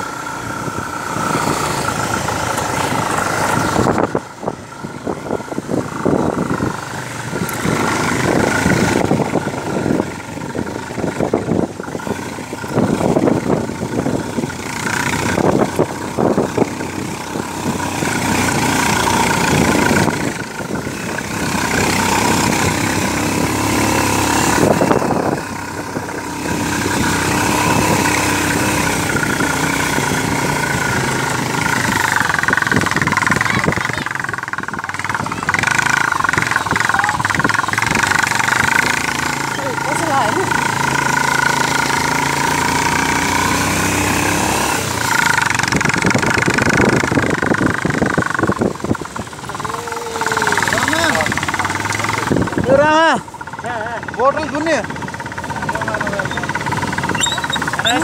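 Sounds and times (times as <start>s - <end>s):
motorcycle engine running: 0.0s - 58.0s
wind and road rumble: 0.0s - 58.0s.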